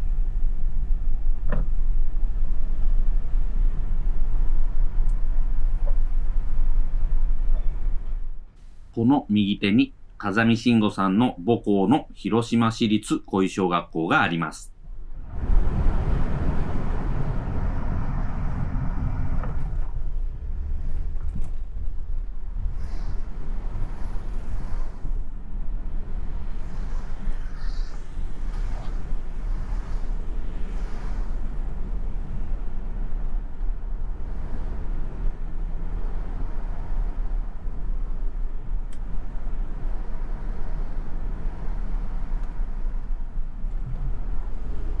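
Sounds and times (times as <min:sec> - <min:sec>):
car engine and tyre rumble: 0:00.0 - 0:09.0, 0:14.8 - 0:45.0.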